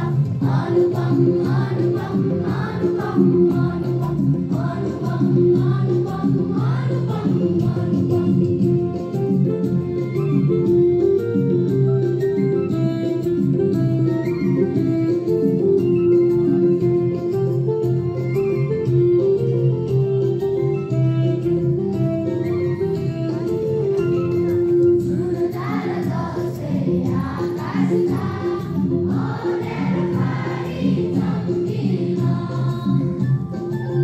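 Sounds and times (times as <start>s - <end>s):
group singing in unison: 0.0s - 8.4s, 25.4s - 33.3s
instrumental accompaniment: 0.0s - 34.0s.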